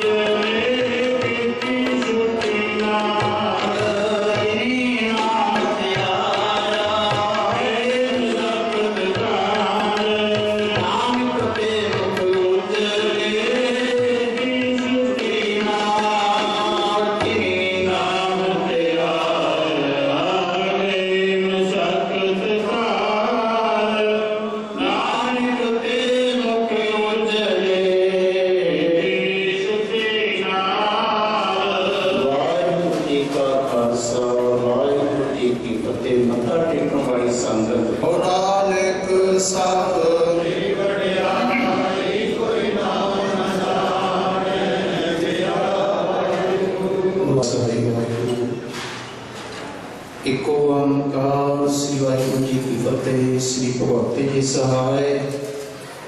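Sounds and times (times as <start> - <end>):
men singing a hymn: 0.0 - 47.9
man chanting prayer into microphone: 0.0 - 48.7, 50.2 - 55.8.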